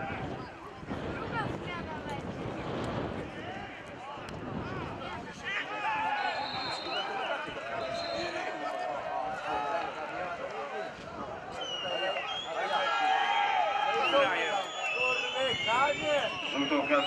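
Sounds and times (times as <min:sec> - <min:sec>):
people shouting and calling out: 0:03.1 - 0:17.0
referee whistle blasts: 0:06.0 - 0:08.4, 0:11.5 - 0:17.0.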